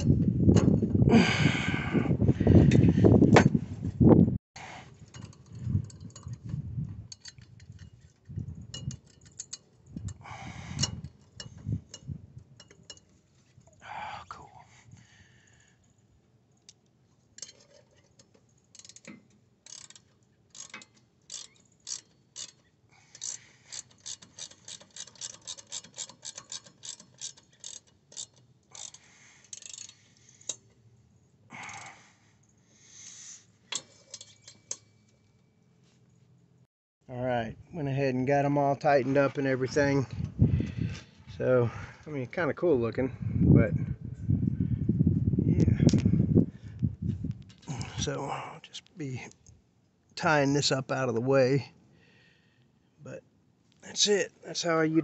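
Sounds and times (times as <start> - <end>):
metal parts clinking: 7.1 - 10.2, 17.3 - 30.8, 33.6 - 35.0
ratchet wrench clicking: 8.7 - 13.0, 18.7 - 30.6.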